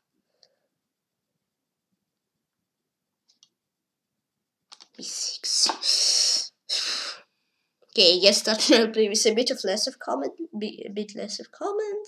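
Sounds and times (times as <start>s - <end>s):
computer mouse clicks: 3.2s - 3.6s, 4.7s - 5.0s.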